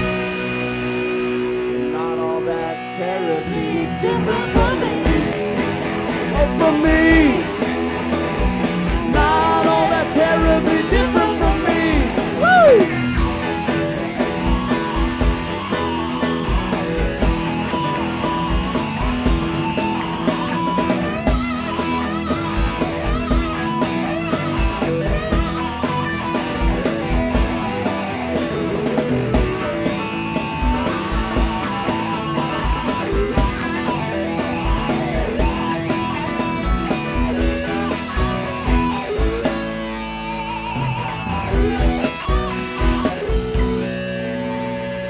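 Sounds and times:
bass guitar: 0.0s - 45.0s
electric guitar lead: 0.0s - 45.0s
keyboards: 0.0s - 45.0s.

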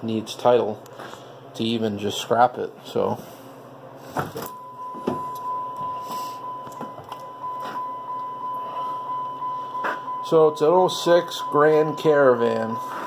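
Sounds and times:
high electronic warning tone: 4.4s - 13.0s.

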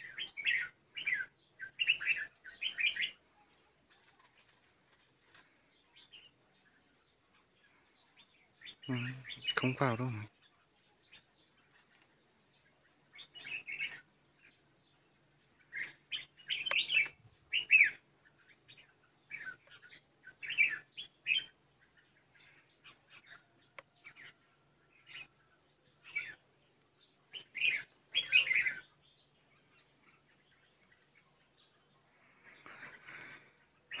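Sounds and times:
birds chirping: 0.0s - 34.0s.

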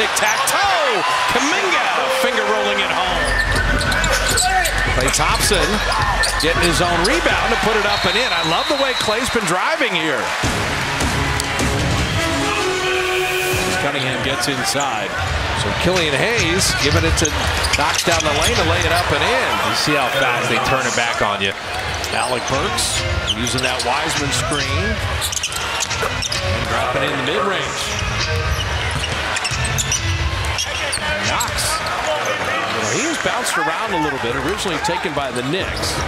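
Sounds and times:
arena music: 0.0s - 9.0s, 10.0s - 14.2s
arena crowd noise: 0.0s - 36.0s
horn-like held chord: 1.6s - 3.3s
sneaker squeaks: 2.0s - 9.1s, 24.5s - 26.7s, 27.9s - 32.5s.

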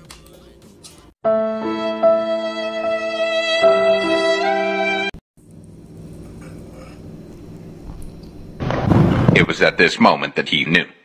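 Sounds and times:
kitchen room hum: 5.4s - 10.0s.

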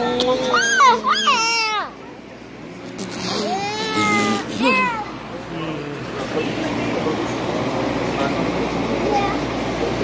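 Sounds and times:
young child squealing: 0.5s - 1.9s
room noise: 2.4s - 10.0s.

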